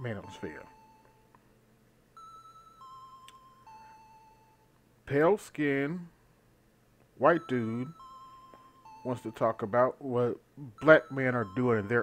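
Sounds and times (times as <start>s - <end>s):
faint electronic music: 0.0s - 1.4s, 2.2s - 6.1s, 7.2s - 12.0s.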